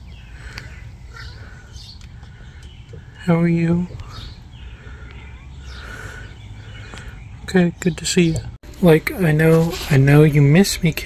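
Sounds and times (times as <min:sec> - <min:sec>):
small birds chirping: 0:00.0 - 0:09.0.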